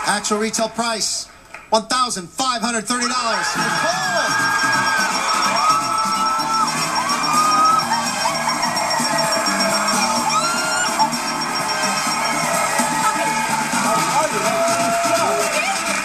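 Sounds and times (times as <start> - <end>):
audience clapping: 0.0 - 1.8, 3.2 - 16.0
upbeat music: 2.8 - 16.0
audience cheering and whooping: 3.1 - 16.0.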